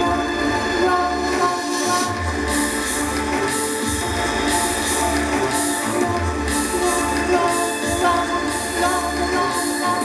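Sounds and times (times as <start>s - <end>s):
low bass: 0.0s - 9.5s.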